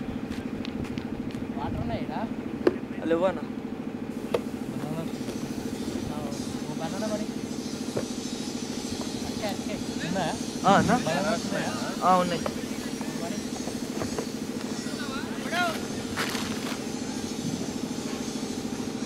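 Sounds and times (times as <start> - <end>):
distant voices: 0.0 - 19.0
pulsing engine drone: 0.0 - 19.0
sharp knocks: 7.9 - 8.2.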